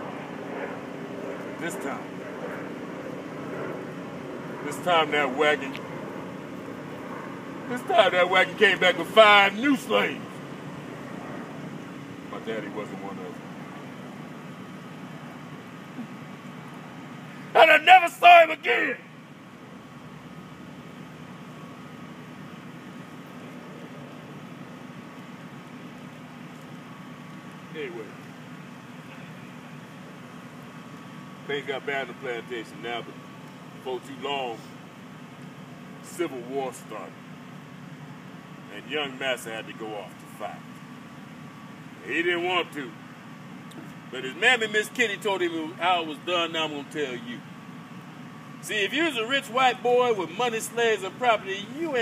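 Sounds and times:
low background hum: 0:00.0 - 0:52.0.

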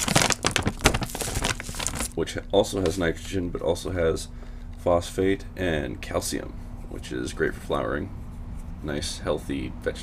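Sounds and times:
plastic bag crinkling: 0:00.0 - 0:02.2.

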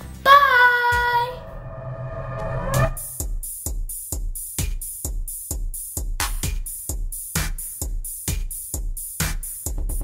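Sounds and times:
girl singing held note: 0:00.3 - 0:01.6
outro music: 0:00.8 - 0:03.3.

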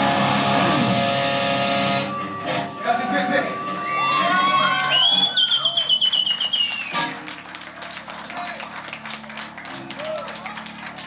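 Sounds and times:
electric guitar note with vibrato: 0:00.0 - 0:03.8.

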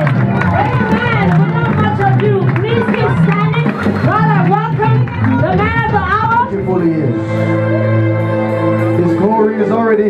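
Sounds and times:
crowd shouting praise: 0:00.0 - 0:06.8
people clapping: 0:00.0 - 0:06.8
sustained keyboard chords: 0:00.0 - 0:10.0.

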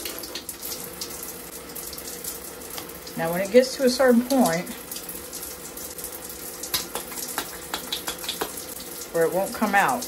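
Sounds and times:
water running over pump: 0:00.0 - 0:10.0.

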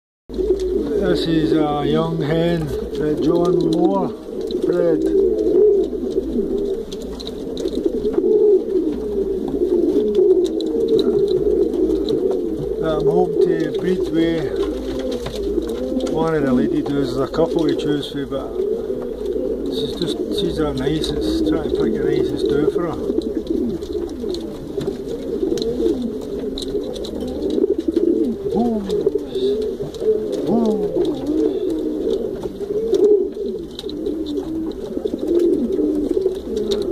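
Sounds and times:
pigeons cooing: 0:00.3 - 0:36.9.

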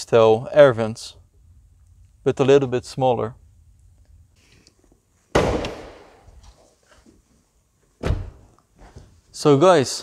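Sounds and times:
car door shutting with heavy thud: 0:08.0 - 0:08.4.

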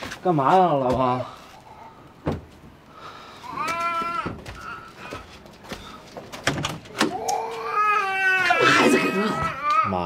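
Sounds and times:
baby crying: 0:03.4 - 0:05.0, 0:07.1 - 0:10.0.

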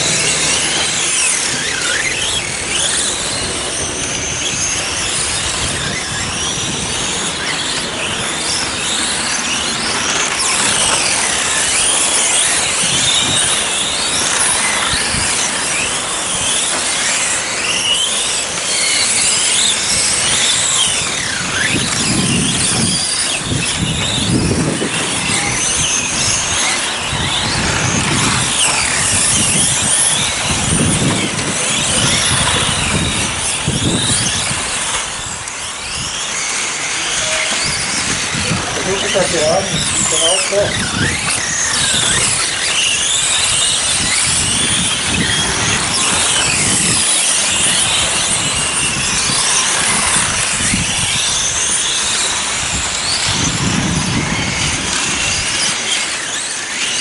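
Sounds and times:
rc car motors whining: 0:00.0 - 0:57.0.

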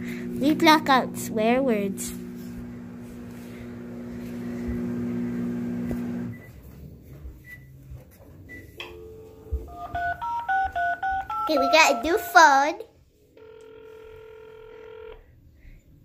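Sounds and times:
steady low hum: 0:00.0 - 0:07.8
phone keypad tones: 0:08.8 - 0:12.4.

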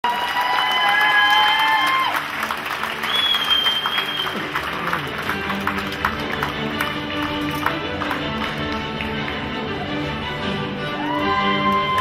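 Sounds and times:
audience applauding and cheering: 0:00.0 - 0:12.0
shrill high whistle: 0:03.0 - 0:04.4.

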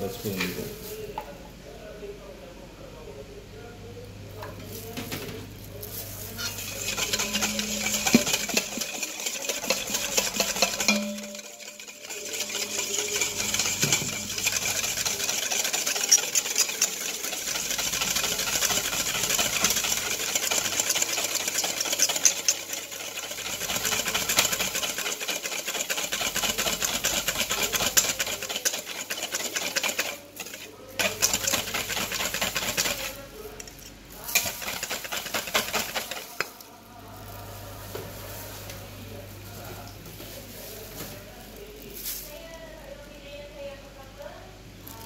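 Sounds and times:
whisk clattering in metal bowl: 0:06.4 - 0:36.6.

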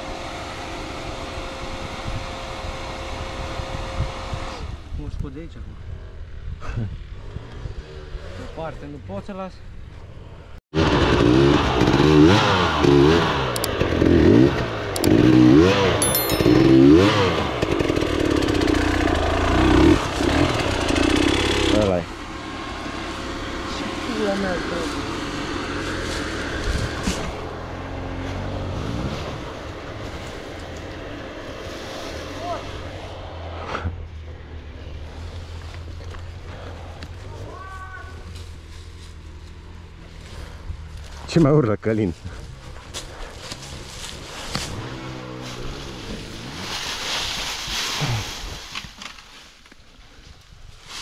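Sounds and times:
dirt bike engine revving: 0:10.8 - 0:35.2, 0:43.6 - 0:46.7.

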